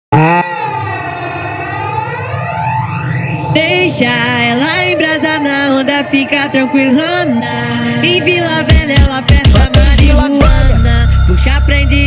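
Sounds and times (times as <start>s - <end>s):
loud synth chord: 0.1s - 5.0s.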